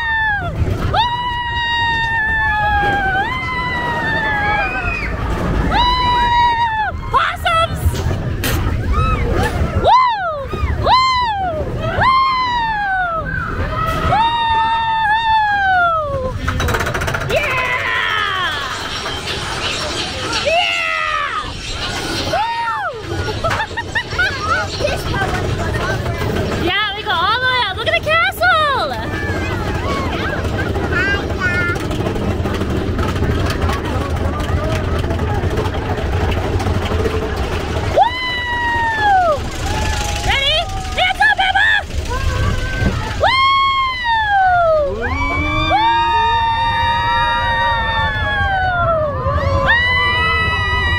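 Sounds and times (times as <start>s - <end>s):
riders screaming: 0.0s - 7.8s, 8.7s - 26.7s, 28.6s - 50.9s
roller coaster train rumble: 0.0s - 50.9s
rapid clatter: 14.8s - 46.8s.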